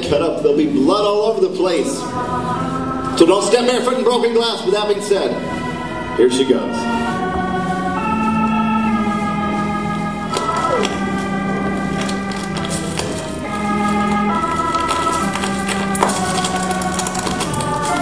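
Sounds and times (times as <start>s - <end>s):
organ playing slow chords: 0.0s - 18.0s.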